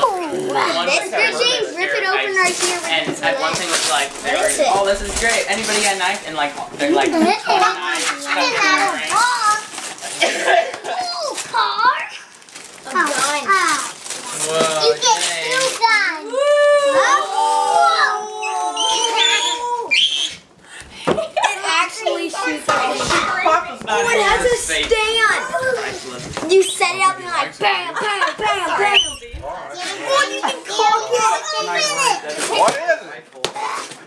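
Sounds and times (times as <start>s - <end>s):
children chattering and squealing: 6.8s - 9.9s, 14.8s - 20.5s, 21.4s - 32.7s
children's voices going ooh: 16.2s - 20.4s.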